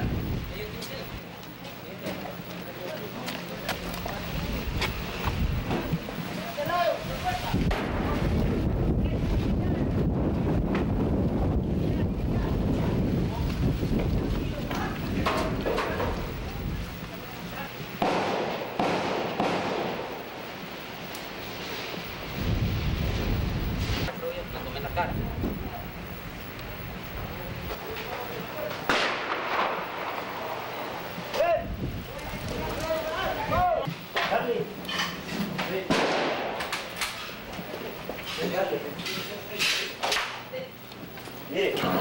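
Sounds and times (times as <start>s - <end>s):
wind rumble on microphone: 0.0s - 1.2s, 3.8s - 6.2s, 6.8s - 17.9s, 22.0s - 27.8s, 31.4s - 33.9s
sudden sharp crack: 18.0s - 20.2s, 28.9s - 30.2s, 35.9s - 37.1s.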